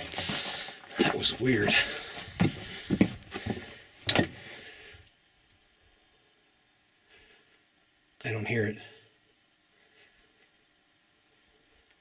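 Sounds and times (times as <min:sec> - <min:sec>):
footsteps crunching on rocky floor: 0:00.0 - 0:03.8.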